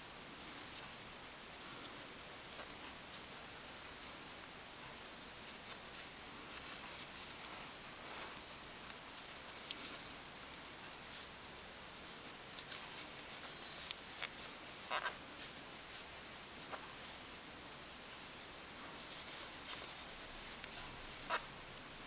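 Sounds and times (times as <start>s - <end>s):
rustling of yarn: 0.0s - 22.0s
steady high-pitched hiss: 0.0s - 22.0s.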